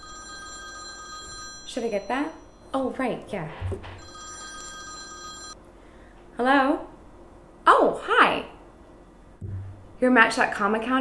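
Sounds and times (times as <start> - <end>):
smartphone ringtone: 0.0 - 2.7, 4.0 - 5.6.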